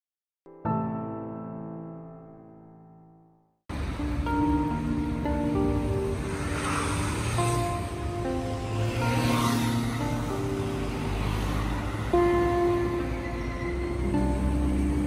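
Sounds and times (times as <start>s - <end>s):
slow held-note music: 2.7s - 15.0s
street traffic: 3.7s - 15.0s.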